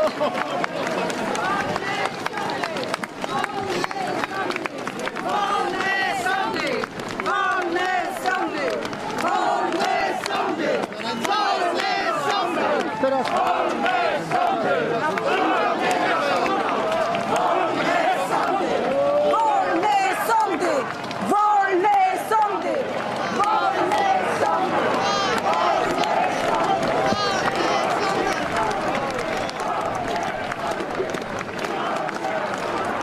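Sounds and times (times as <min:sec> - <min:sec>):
crowd shouting: 0:00.0 - 0:33.0.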